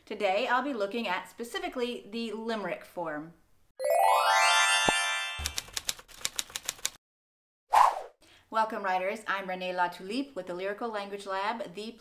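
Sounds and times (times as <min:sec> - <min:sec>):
rising musical sweep: 0:03.8 - 0:05.5
typewriter key clicks: 0:05.4 - 0:07.0.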